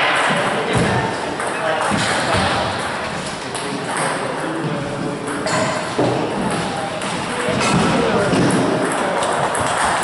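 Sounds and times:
people chatting: 0.0 - 10.0
table tennis balls clicking: 5.2 - 10.0.

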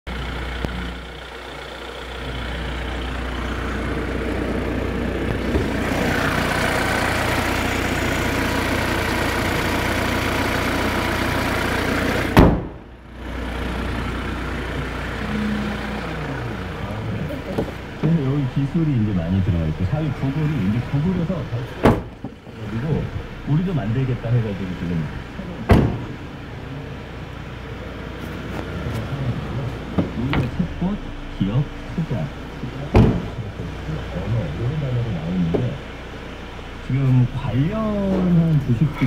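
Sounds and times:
diesel engine idling: 0.1 - 39.0
loud bang: 12.4 - 12.9.

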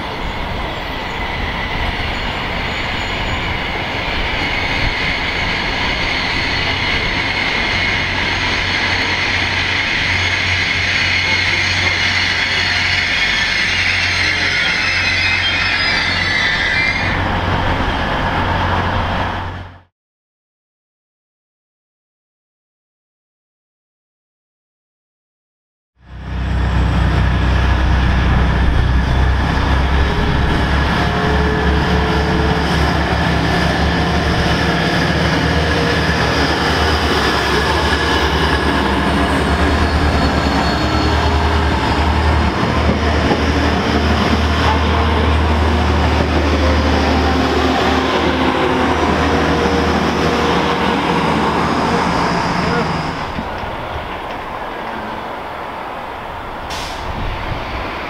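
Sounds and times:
diesel train engine rumble: 0.0 - 19.9, 26.0 - 58.0
train wheels on rails: 26.4 - 58.0.

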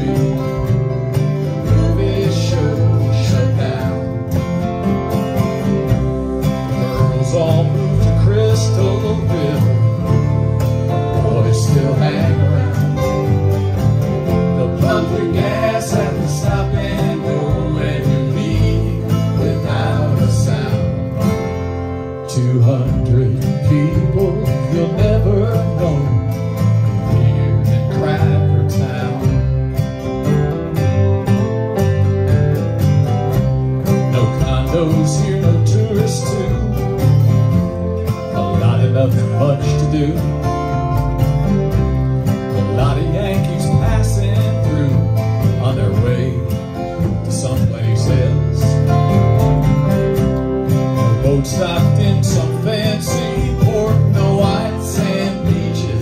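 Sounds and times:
guitars strumming: 0.0 - 56.0
upright bass: 0.0 - 56.0.

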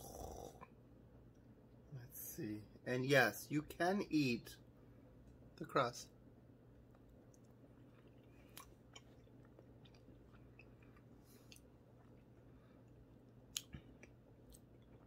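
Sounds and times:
low steady hum: 0.0 - 15.0
man chewing: 6.9 - 15.0
wet mouth clicks: 13.5 - 15.0.

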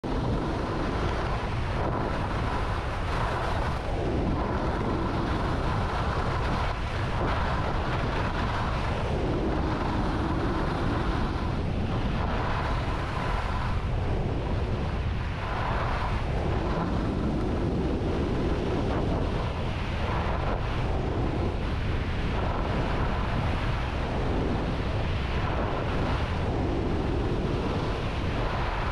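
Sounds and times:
wind on microphone: 0.0 - 28.9.

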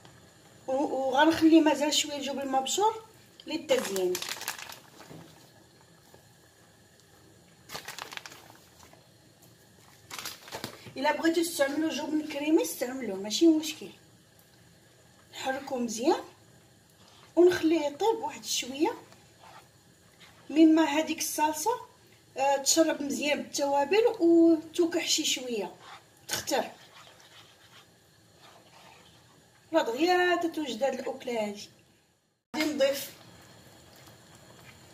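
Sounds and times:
plastic bag crinkling: 3.7 - 5.4, 7.7 - 9.0, 9.9 - 10.9
spatula stirring sauce in a pan: 18.9 - 21.0, 25.3 - 29.6.

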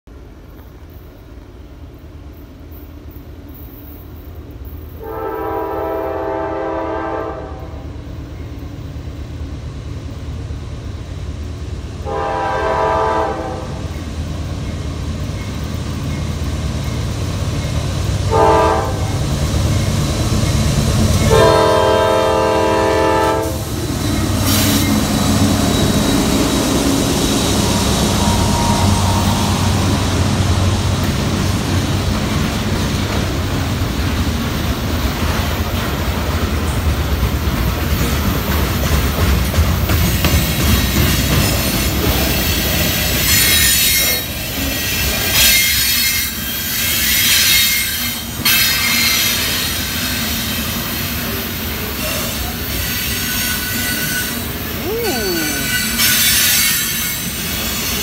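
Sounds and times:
train rumble: 0.1 - 58.0
train horn blasts: 5.0 - 7.9, 12.0 - 13.9, 18.3 - 19.2, 21.2 - 23.7, 27.6 - 30.3
freight cars rolling past: 13.8 - 43.4.

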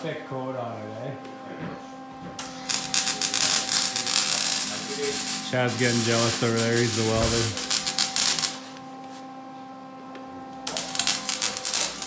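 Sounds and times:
steady low hum: 0.0 - 12.0
welding arc crackling: 2.4 - 8.8, 10.6 - 12.0.

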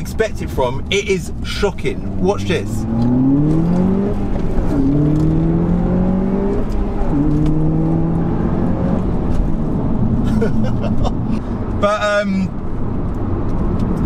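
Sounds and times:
car engine accelerating hard: 0.0 - 11.8.

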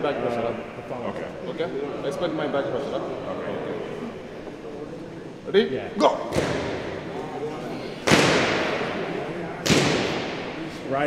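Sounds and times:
faint voices: 0.0 - 11.0
loud sharp bangs with echo: 6.3 - 7.0, 8.0 - 10.7.

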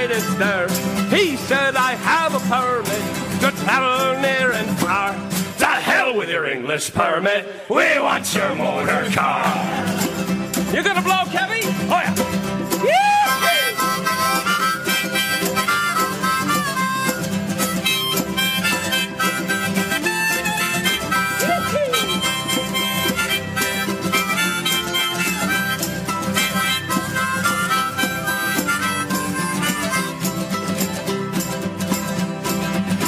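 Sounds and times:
harmonica playing: 0.0 - 5.3, 11.2 - 33.0
strummed acoustic guitar: 0.0 - 6.5, 7.8 - 33.0.

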